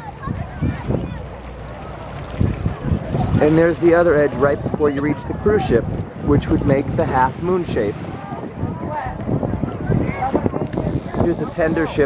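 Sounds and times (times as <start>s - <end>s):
faint voices of people: 0.0s - 12.0s
wind rumbling on microphone: 0.0s - 12.0s.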